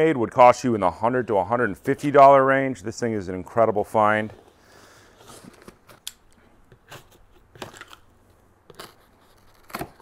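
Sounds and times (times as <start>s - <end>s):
knife slicing packing tape: 8.7s - 10.0s.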